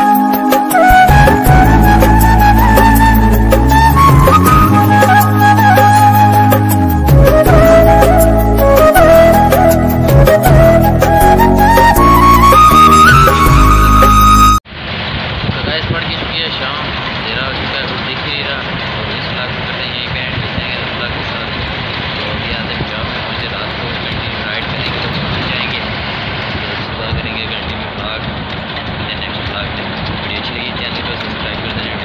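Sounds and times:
young man talking: 15.6 - 21.6, 22.2 - 25.8, 26.8 - 28.3, 29.0 - 32.0
vehicle cabin road noise: 15.6 - 32.0.

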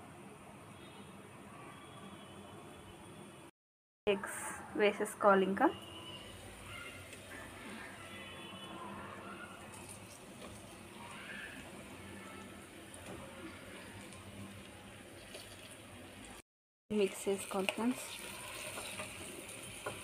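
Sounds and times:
food sizzling in a pan: 9.0 - 20.0.

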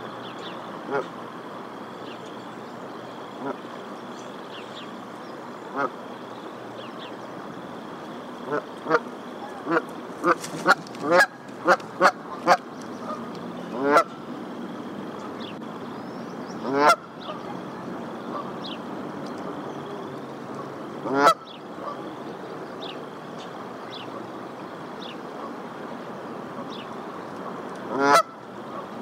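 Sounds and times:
geese honking: 0.8 - 1.2, 3.3 - 3.8, 5.6 - 6.0, 8.4 - 14.2, 16.6 - 18.8, 20.5 - 22.4, 27.4 - 29.0.

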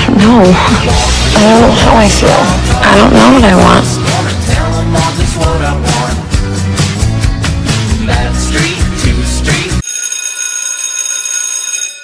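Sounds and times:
electronic bell ringing: 9.8 - 12.0.

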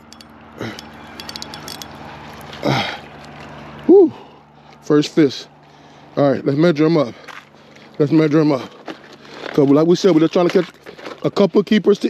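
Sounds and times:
fishing reel clicking: 0.0 - 1.9.

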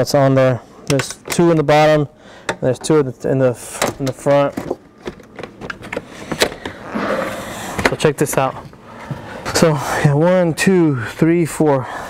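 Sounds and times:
plastic rubbing and scraping: 3.9 - 9.7.

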